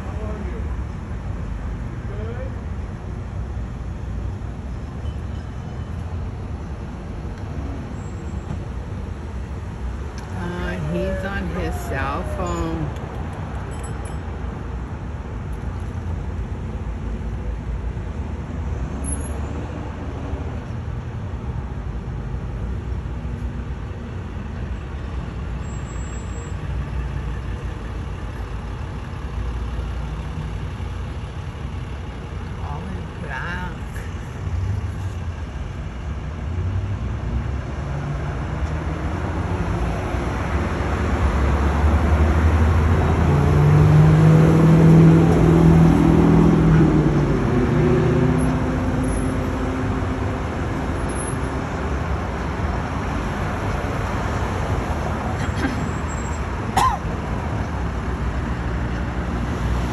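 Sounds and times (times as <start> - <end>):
street traffic rumble: 0.0 - 59.9.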